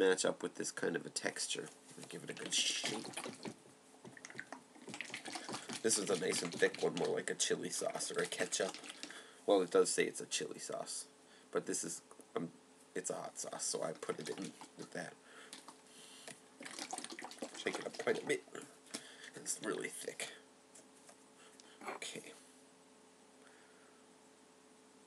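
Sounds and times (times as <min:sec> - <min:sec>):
sauce sloshing in squeeze bottle: 0:02.3 - 0:09.2, 0:13.8 - 0:15.8, 0:16.6 - 0:19.0.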